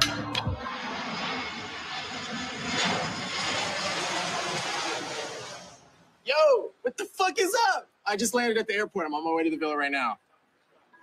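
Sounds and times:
jet aircraft roar: 0:00.0 - 0:07.6.

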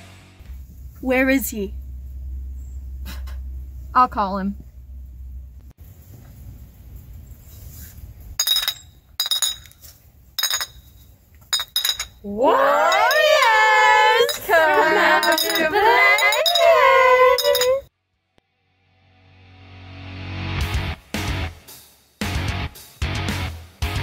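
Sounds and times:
glass bottles clinking: 0:08.4 - 0:09.8, 0:10.4 - 0:17.8
person calling in sing-song: 0:12.3 - 0:17.8.

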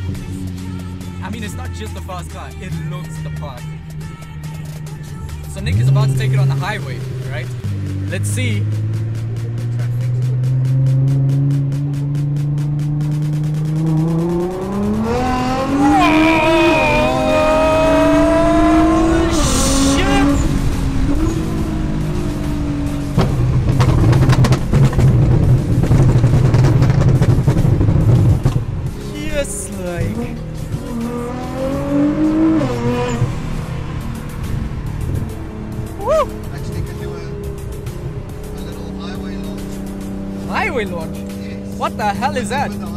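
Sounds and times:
car engine revving through gears: 0:04.6 - 0:42.9
exhaust cracks and pops: 0:23.1 - 0:28.7.

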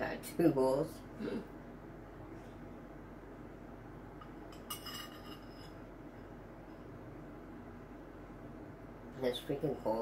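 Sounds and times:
metal spoon clinking on bowl: 0:04.2 - 0:05.8.

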